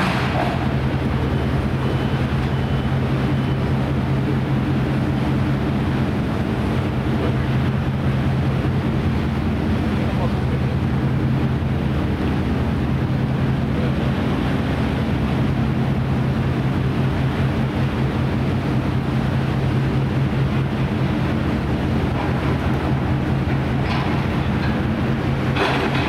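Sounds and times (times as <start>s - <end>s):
ship engine low drone: 0.0s - 26.0s.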